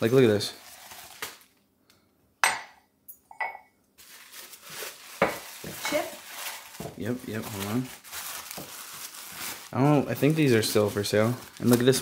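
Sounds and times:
ceramic mug knocking on stone countertop: 0:02.4 - 0:03.7
mug ringing: 0:02.4 - 0:03.7.

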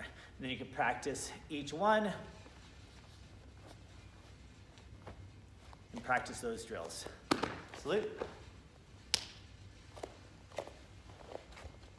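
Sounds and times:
soft footsteps: 0:01.7 - 0:11.9.

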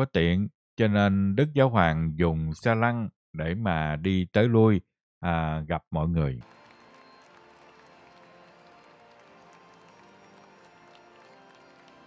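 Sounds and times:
crowd applause: 0:06.4 - 0:12.0
faint music with held notes: 0:06.4 - 0:12.0.

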